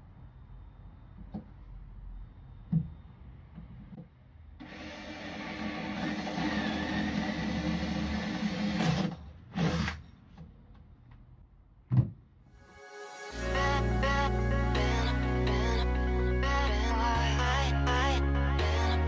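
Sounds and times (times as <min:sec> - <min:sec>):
cordless drill boring into board: 0:04.6 - 0:10.0.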